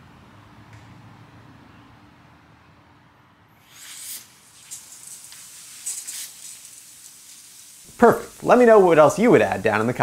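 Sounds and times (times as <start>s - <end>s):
lawn sprinklers hissing: 3.6s - 10.0s.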